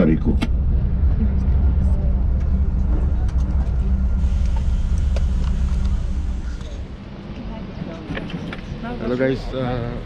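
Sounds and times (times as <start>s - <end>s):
coach bus engine idling: 0.0s - 10.0s.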